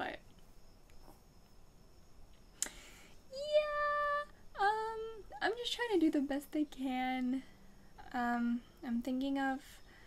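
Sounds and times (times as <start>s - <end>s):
woman breathing in: 2.6s - 3.2s.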